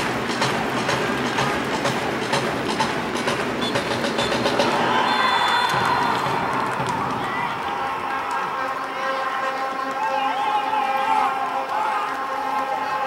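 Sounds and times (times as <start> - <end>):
crowd noise: 0.0 - 13.0
stadium crowd clapping: 0.0 - 13.0
referee whistle blast: 5.0 - 6.3.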